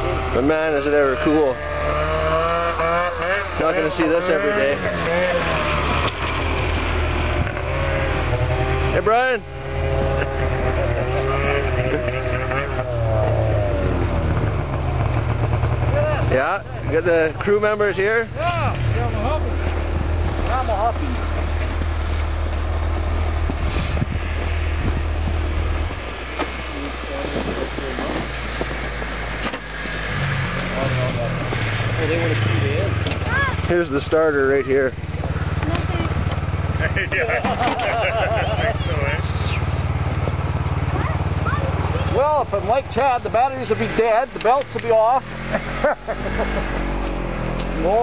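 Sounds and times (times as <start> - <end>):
snowmobile engine idling: 0.0 - 30.1, 30.8 - 48.0
people talking: 0.3 - 1.6, 3.4 - 5.6, 8.9 - 9.5, 10.6 - 12.9, 15.8 - 19.8, 20.4 - 21.4, 26.6 - 28.4, 30.7 - 39.8, 40.8 - 45.3, 47.7 - 48.0.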